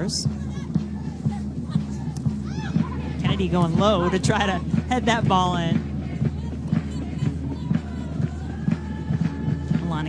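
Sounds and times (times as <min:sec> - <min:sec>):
faint music with beat: 0:00.0 - 0:10.0
stadium crowd noise: 0:00.0 - 0:10.0.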